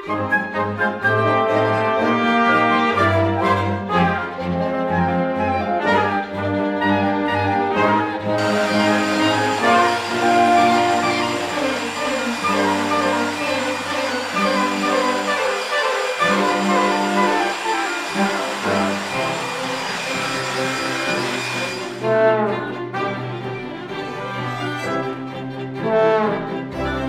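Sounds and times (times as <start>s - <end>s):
orchestral music with brass: 0.0s - 27.0s
electric blower rushing: 8.3s - 22.4s.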